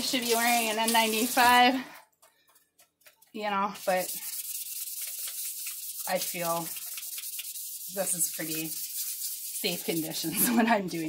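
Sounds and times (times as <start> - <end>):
stone rubbing on wet sandpaper: 0.0 - 1.6, 3.6 - 11.0.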